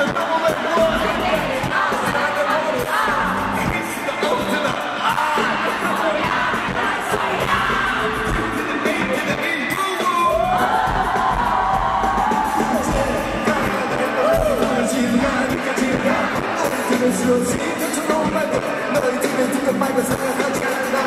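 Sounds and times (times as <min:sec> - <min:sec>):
man singing into microphone: 0:00.0 - 0:06.2, 0:07.0 - 0:10.7, 0:12.7 - 0:21.0
live pop music: 0:00.0 - 0:21.0
crowd cheering: 0:09.7 - 0:21.0.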